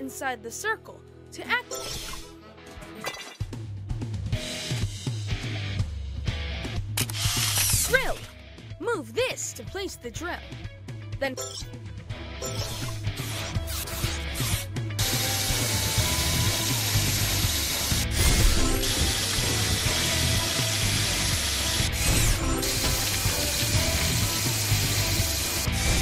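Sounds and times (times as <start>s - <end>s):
background music: 0.0s - 26.0s
cartoon drill grinding and rattling: 1.7s - 2.3s, 7.0s - 8.3s, 12.4s - 26.0s.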